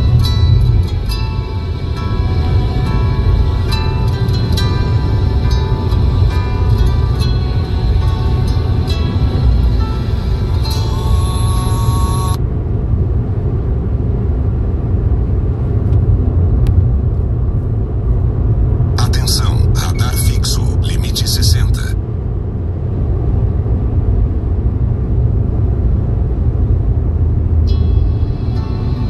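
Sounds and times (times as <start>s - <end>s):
background music: 0.0s - 12.4s, 27.6s - 29.0s
car driving rumble: 0.0s - 29.0s.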